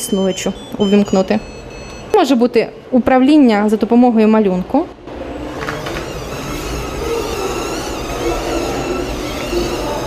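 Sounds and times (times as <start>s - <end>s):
robot gear motors whirring: 5.4s - 10.0s.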